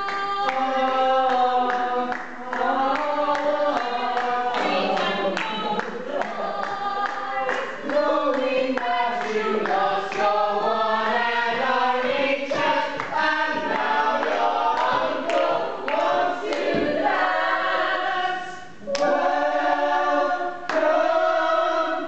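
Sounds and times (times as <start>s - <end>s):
group singing a show tune: 0.0s - 22.0s.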